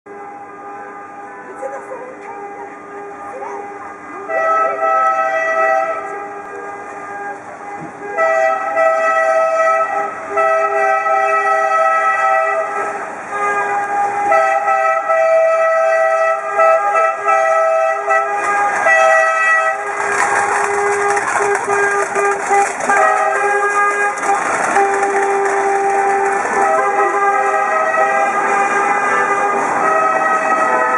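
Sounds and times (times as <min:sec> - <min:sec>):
car horns honking: 0:00.1 - 0:30.9.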